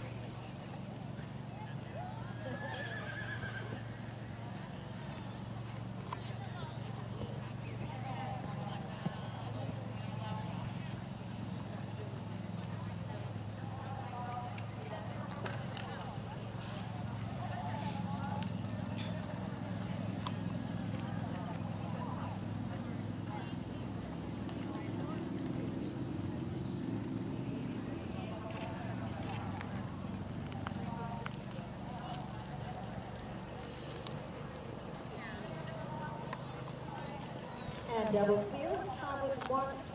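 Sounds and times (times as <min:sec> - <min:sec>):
horse whinnying: 0:02.4 - 0:03.8.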